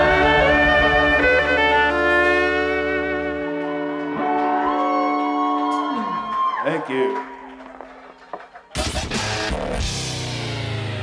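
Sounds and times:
string band playing chord: 0:00.0 - 0:04.1
bass: 0:00.0 - 0:06.1, 0:08.8 - 0:11.0.

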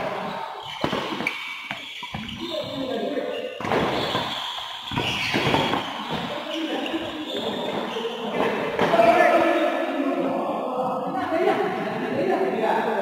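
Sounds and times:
rackets hitting shuttlecock: 0:00.7 - 0:02.4.

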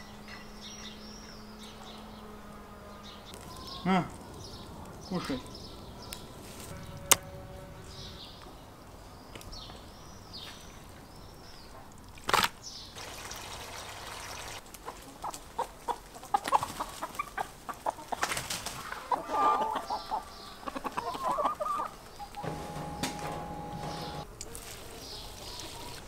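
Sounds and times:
small birds chirping: 0:00.0 - 0:19.2, 0:19.8 - 0:26.0
chickens clucking: 0:13.0 - 0:26.0.

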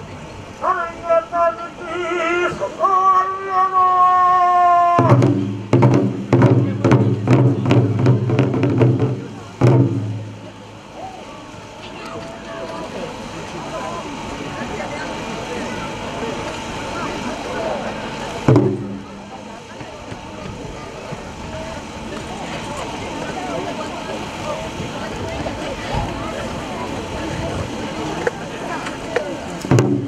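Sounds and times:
murmur of voices: 0:00.0 - 0:30.0
heavy barrel drum stroke: 0:04.9 - 0:11.6, 0:18.0 - 0:22.1, 0:27.6 - 0:30.0.

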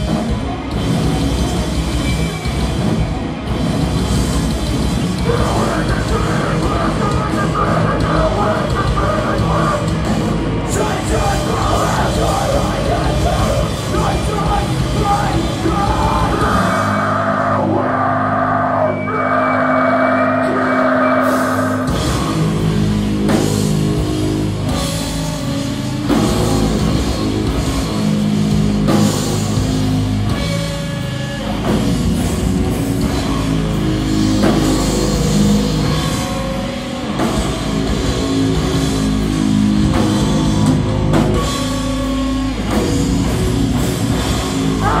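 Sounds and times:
bass guitar chords: 0:00.0 - 0:45.0
distorted electric guitar: 0:00.0 - 0:45.0
punk band playing live: 0:00.0 - 0:45.0
person singing: 0:05.3 - 0:09.9, 0:10.6 - 0:21.9.

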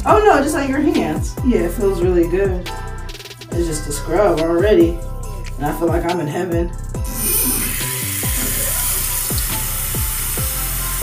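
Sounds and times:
background music falling tones: 0:00.0 - 0:11.0
water running from a tap: 0:07.1 - 0:11.0.

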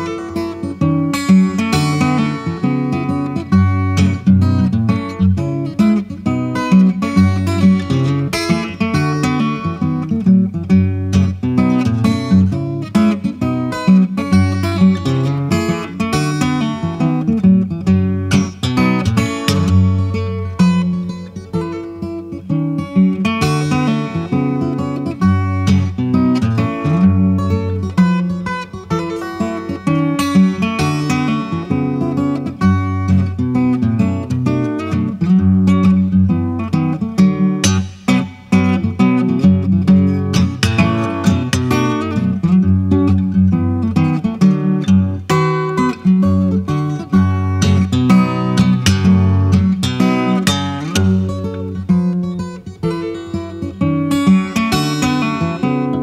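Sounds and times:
fingerstyle acoustic guitar: 0:00.0 - 0:56.0.

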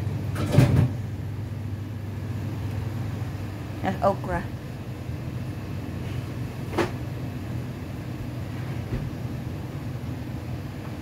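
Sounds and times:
refrigeration hum: 0:00.0 - 0:11.0.

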